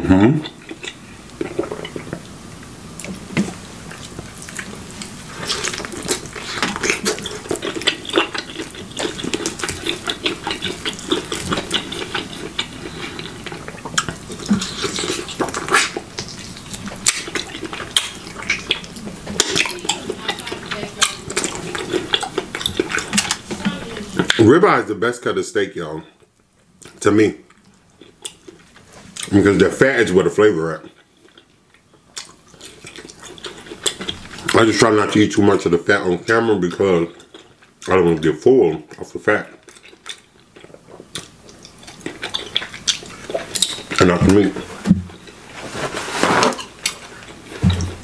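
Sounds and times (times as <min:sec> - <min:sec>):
wet chewing and lip smacking: 0:00.4 - 0:24.4, 0:26.2 - 0:29.4, 0:30.8 - 0:34.6, 0:37.0 - 0:38.0, 0:38.9 - 0:45.4.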